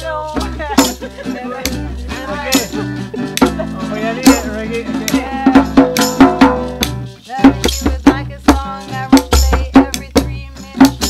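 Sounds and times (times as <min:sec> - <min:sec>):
nylon-string guitar playing: 0:00.0 - 0:07.7
hand drum beat: 0:00.0 - 0:11.0
maraca shaking: 0:00.0 - 0:11.0
person singing: 0:00.0 - 0:11.0
person laughing: 0:00.4 - 0:04.5.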